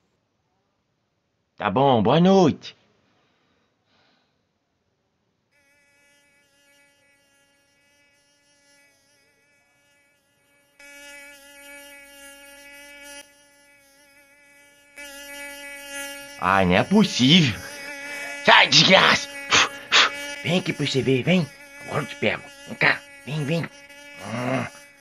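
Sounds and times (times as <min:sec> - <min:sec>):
mosquito buzzing: 0:05.5 - 0:25.0.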